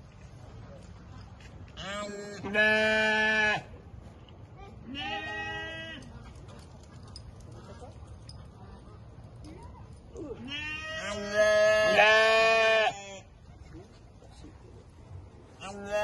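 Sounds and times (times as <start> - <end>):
sheep bleating: 10.4 - 13.2.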